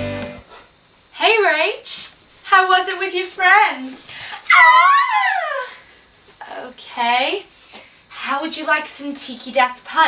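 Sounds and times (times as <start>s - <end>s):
girl squealing: 4.4s - 5.9s.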